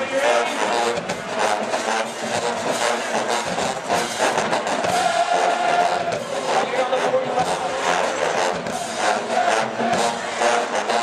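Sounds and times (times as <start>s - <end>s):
marching band brass and drums: 0.0s - 11.0s.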